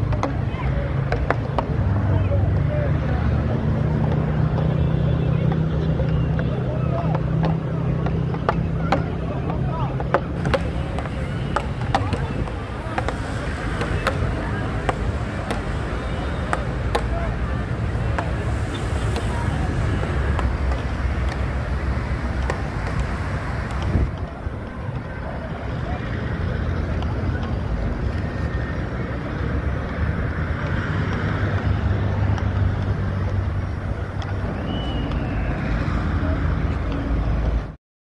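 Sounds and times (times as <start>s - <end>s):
road traffic rumble: 0.0s - 37.8s.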